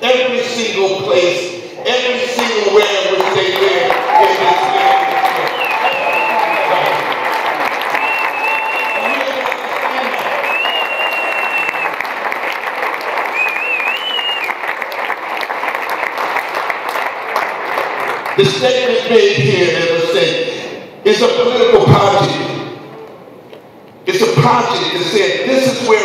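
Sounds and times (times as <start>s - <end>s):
audience applauding: 2.3s - 18.9s.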